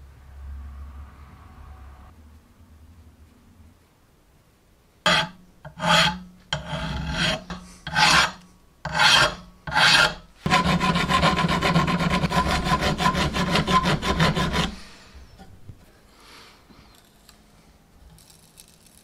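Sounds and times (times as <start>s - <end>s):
hand file rasping on steel: 5.1s - 14.9s.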